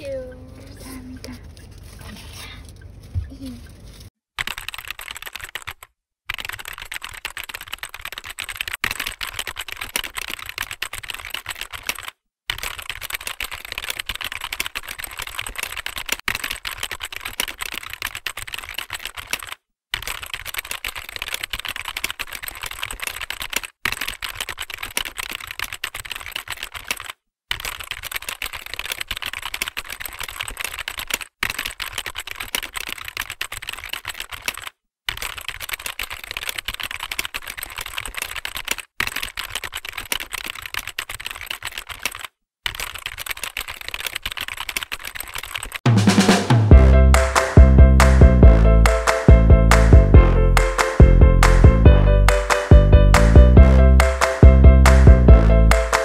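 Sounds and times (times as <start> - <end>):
keyboard typing clicks: 4.4 - 30.4, 47.2 - 56.0.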